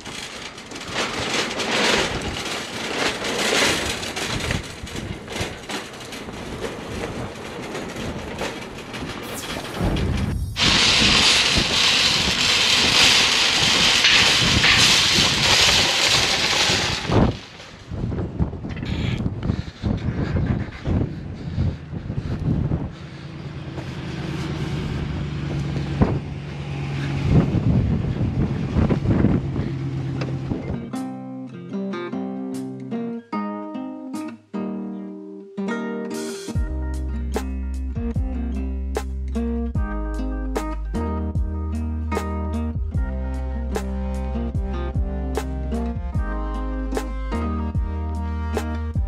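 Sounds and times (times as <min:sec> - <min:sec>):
knocks and scrapes: 0:00.0 - 0:26.3
cart wheels rattling on asphalt: 0:00.0 - 0:30.8
acoustic guitar music: 0:30.0 - 0:49.0.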